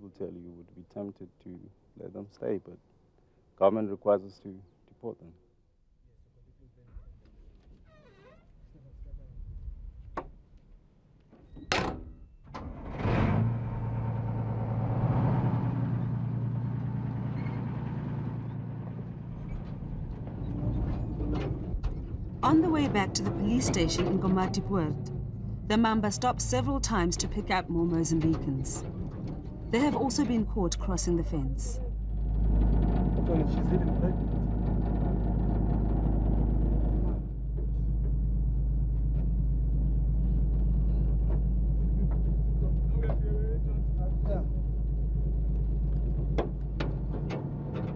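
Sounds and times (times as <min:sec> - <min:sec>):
armoured vehicle engine running: 0:12.9 - 0:47.9
people talking: 0:22.4 - 0:25.1, 0:25.7 - 0:28.8, 0:29.7 - 0:31.9, 0:33.2 - 0:34.3, 0:41.9 - 0:44.6.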